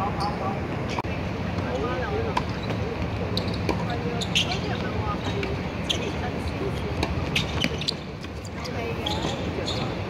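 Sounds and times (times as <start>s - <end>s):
low city hum: 0.0s - 10.0s
people talking: 0.0s - 10.0s
tennis ball bouncing: 3.6s - 6.0s, 6.6s - 8.4s.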